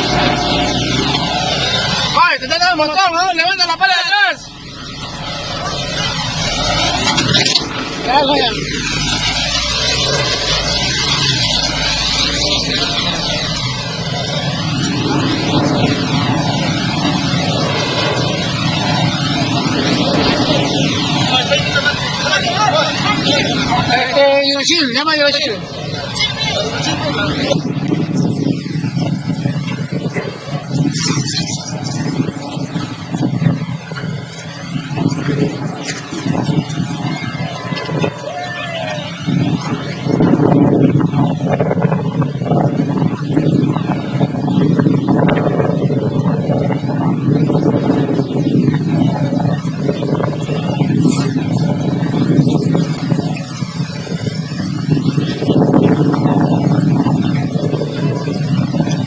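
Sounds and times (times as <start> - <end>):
diesel engine running: 0.0 - 24.2
people talking: 2.1 - 4.5, 7.0 - 8.8, 12.1 - 13.8, 19.5 - 42.6.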